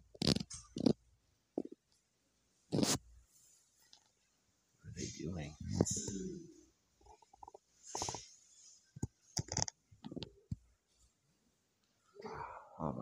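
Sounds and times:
man speaking: 0:04.9 - 0:06.6.

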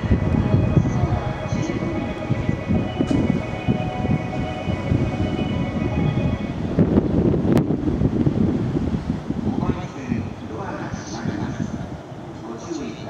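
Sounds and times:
train wheels rumbling on rail: 0:00.0 - 0:13.0.

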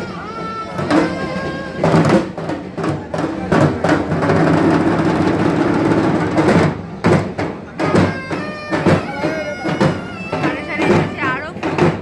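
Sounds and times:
crowd din: 0:00.0 - 0:12.0
drums in a loud roll: 0:00.0 - 0:12.0.

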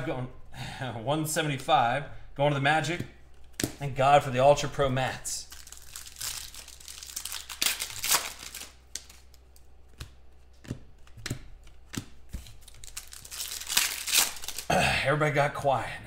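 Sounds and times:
foil wrapper crinkling and tearing: 0:05.4 - 0:09.6, 0:12.3 - 0:14.7.

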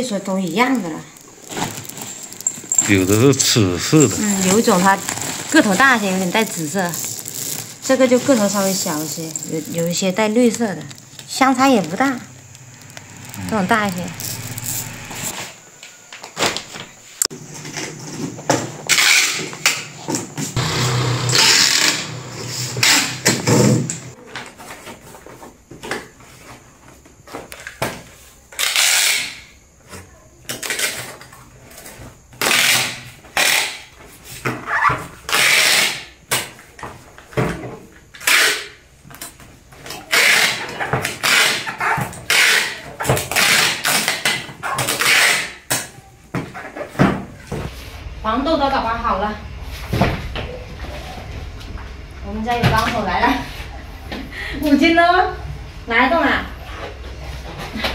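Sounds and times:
packing tape screeching: 0:00.7 - 0:15.5, 0:18.9 - 0:19.9, 0:20.6 - 0:24.1, 0:28.5 - 0:29.5, 0:32.4 - 0:33.9, 0:34.6 - 0:36.1, 0:38.1 - 0:38.8, 0:39.8 - 0:45.7.

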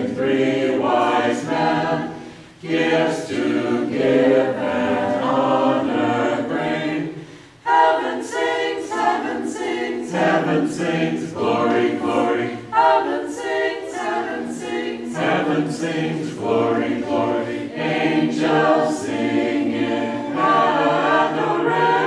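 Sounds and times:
choir singing a cappella: 0:00.0 - 0:22.0.

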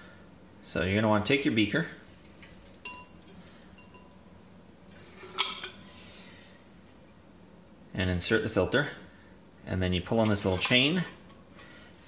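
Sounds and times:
glass clattering: 0:02.6 - 0:04.2, 0:04.9 - 0:05.8
glass beaker clinking: 0:02.8 - 0:05.8.

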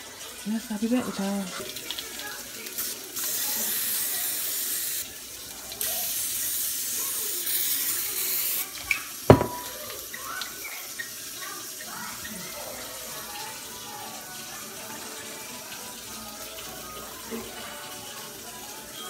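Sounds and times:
sharp knock: 0:09.3 - 0:09.7.

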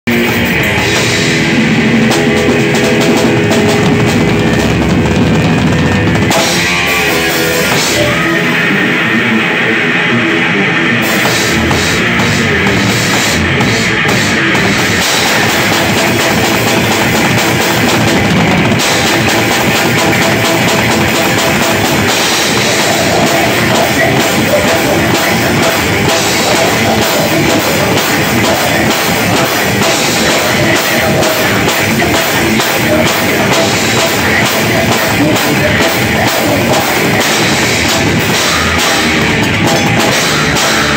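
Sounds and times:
drums: 0:00.0 - 0:40.9
live heavy rock band: 0:00.0 - 0:40.9.

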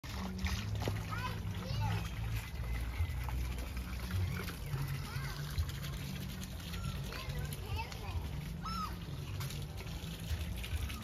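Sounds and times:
water splashing: 0:00.0 - 0:11.0.

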